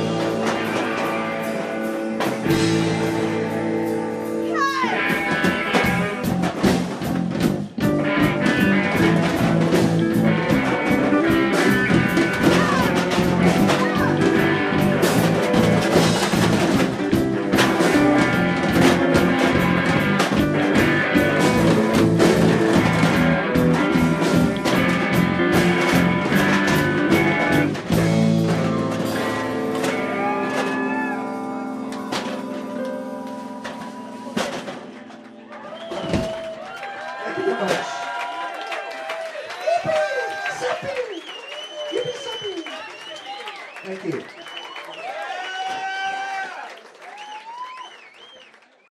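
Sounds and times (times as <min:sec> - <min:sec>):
drum kit: 0:00.0 - 0:38.0
electric guitars: 0:00.0 - 0:39.0.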